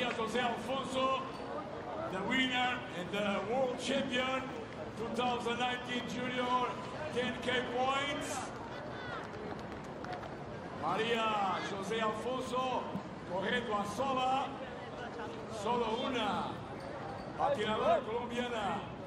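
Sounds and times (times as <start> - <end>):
man talking: 2.1 - 8.5, 10.8 - 14.6, 17.4 - 19.0.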